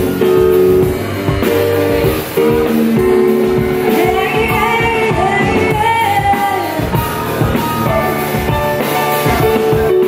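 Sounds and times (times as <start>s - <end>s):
drum beat: 0.0s - 10.0s
keyboard: 0.0s - 10.0s
woman singing into a microphone: 2.5s - 7.0s.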